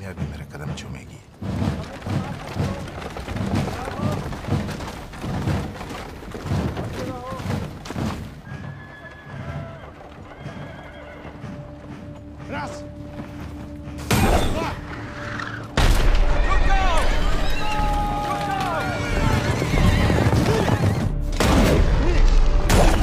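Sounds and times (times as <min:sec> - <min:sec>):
hooves: 0:00.0 - 0:15.8, 0:16.6 - 0:21.3
horses whinnying: 0:02.1 - 0:12.7, 0:14.2 - 0:15.8, 0:17.0 - 0:21.2
orchestral music: 0:08.4 - 0:23.0.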